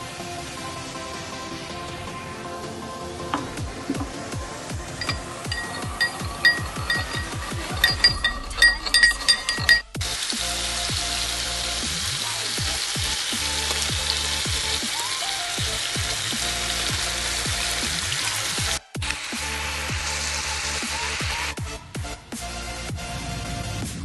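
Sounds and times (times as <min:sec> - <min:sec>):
food sizzling in a pan: 0:09.9 - 0:21.6.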